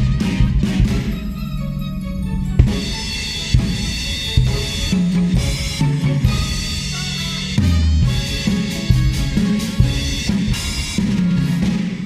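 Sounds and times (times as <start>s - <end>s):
acoustic drum kit: 0.0s - 1.4s, 2.6s - 12.0s
song backing track: 0.0s - 12.0s.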